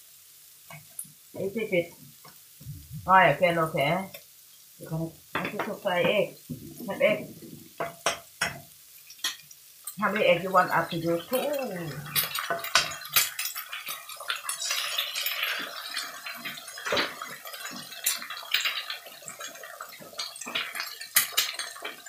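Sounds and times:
eggs sizzling in hot oil: 0.0s - 22.0s.

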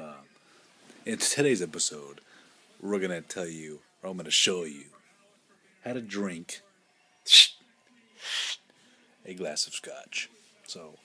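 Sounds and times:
man breathing softly: 2.2s - 2.8s, 8.7s - 9.2s.

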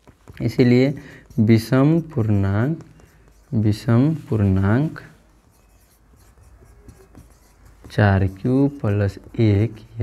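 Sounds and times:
marker pen on whiteboard: 0.0s - 10.0s.

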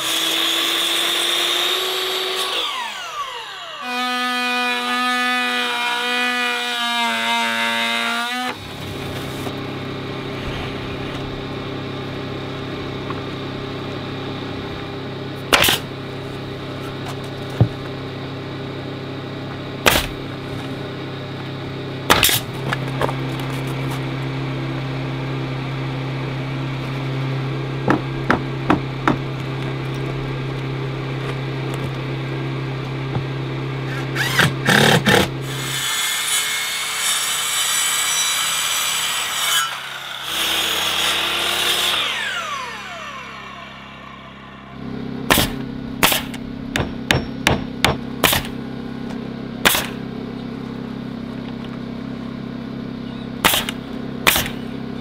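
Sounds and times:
nail gun firing: 15.5s - 15.9s, 19.8s - 20.2s, 22.1s - 22.5s, 34.1s - 35.4s, 45.3s - 48.6s, 49.6s - 50.0s, 53.4s - 54.6s
air compressor humming: 40.7s - 52.8s.

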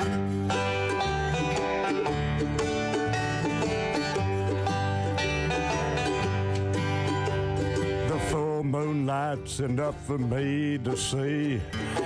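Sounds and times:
acoustic guitar: 0.0s - 12.0s
banjo picking: 0.0s - 12.0s
upright bass: 0.0s - 12.0s.

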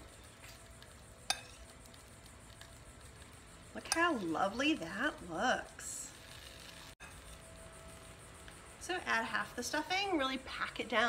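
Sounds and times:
woman speaking: 3.8s - 6.2s, 8.8s - 11.0s.

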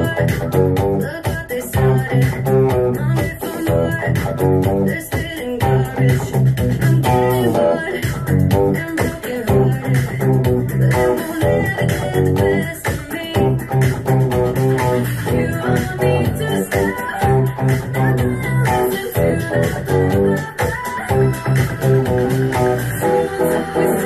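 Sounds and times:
band with bass and drums: 0.0s - 24.0s
overdriven electric guitar: 0.0s - 24.0s.

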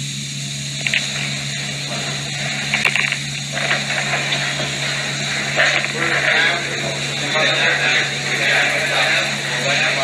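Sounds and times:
film soundtrack hum and hiss: 0.0s - 10.0s
indistinct background murmur: 0.5s - 10.0s.

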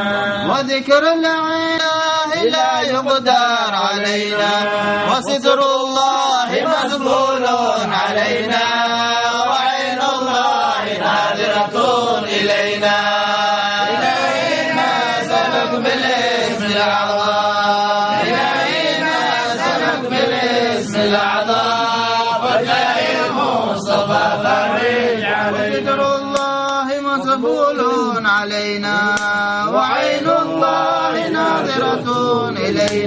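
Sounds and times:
men chanting a devotional hymn: 0.0s - 33.0s.

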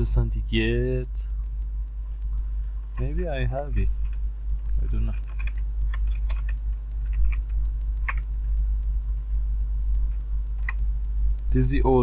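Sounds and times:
steady low hum: 0.0s - 12.0s
keyboard keys clicking: 2.2s - 8.9s.

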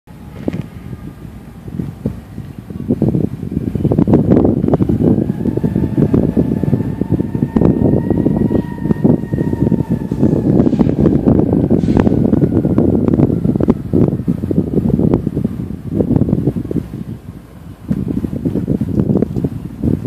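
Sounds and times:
faint high tone from train: 0.1s - 14.5s
diesel freight train: 0.1s - 20.0s
wind buffeting microphone: 0.1s - 20.0s.

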